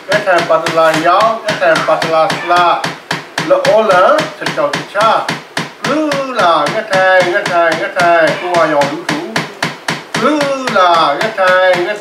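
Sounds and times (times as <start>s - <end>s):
rhythmic wooden knocking: 0.0s - 12.0s
person chanting: 0.1s - 9.5s, 10.2s - 12.0s.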